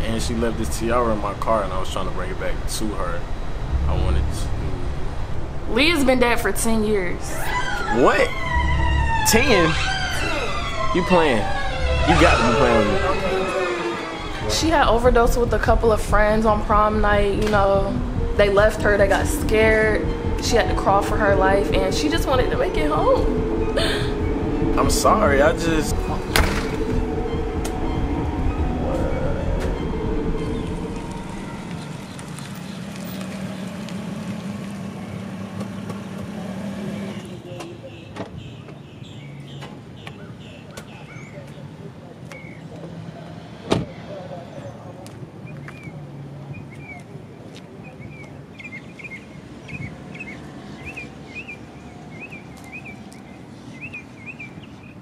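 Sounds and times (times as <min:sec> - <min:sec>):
low outdoor rumble: 0:00.0 - 0:07.4, 0:08.3 - 0:37.5
car engine humming: 0:00.0 - 0:40.5
bird chirping: 0:18.1 - 0:42.8, 0:44.4 - 0:55.0
car rolling in and stopping: 0:22.1 - 0:37.4.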